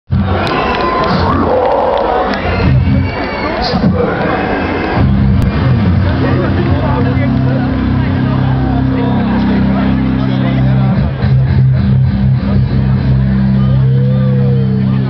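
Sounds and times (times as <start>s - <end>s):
crowd cheering and shouting: 0.1s - 15.0s
amplified guitars and bass chord: 3.8s - 15.0s.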